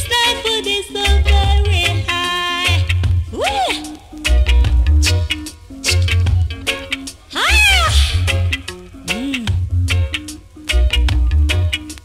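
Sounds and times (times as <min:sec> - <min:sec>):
reggae music playing: 0:00.0 - 0:12.0.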